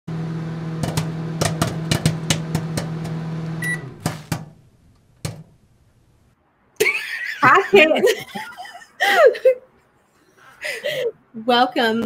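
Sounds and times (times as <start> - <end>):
microwave oven humming: 0.1 - 6.3
microwave beep: 3.4 - 4.3.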